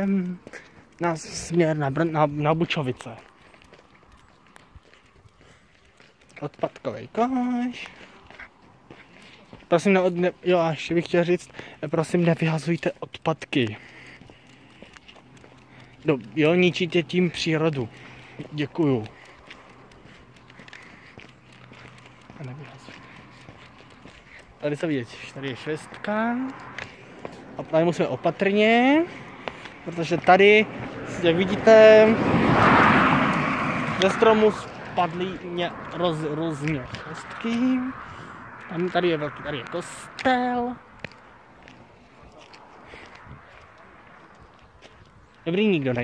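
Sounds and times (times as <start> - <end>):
footsteps on paving stones: 0.0 - 46.0.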